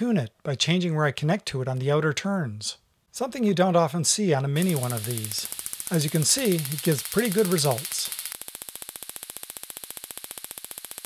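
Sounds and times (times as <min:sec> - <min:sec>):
tesla coil crackling buzz: 0:04.6 - 0:11.0.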